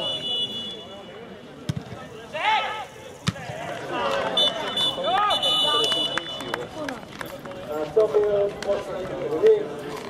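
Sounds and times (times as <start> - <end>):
football kicked: 1.6 - 2.1, 3.2 - 3.6.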